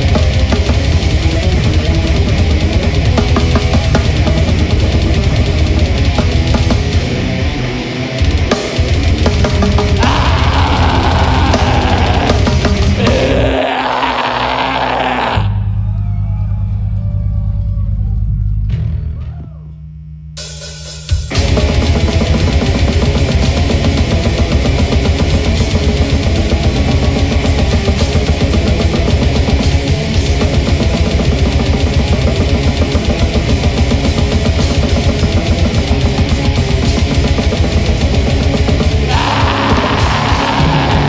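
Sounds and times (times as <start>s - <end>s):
metal band playing: 0.0s - 15.7s, 20.4s - 41.0s
droning guitar and bass note: 0.0s - 20.4s, 21.3s - 41.0s
faint voices shouting: 10.0s - 19.8s, 39.0s - 41.0s.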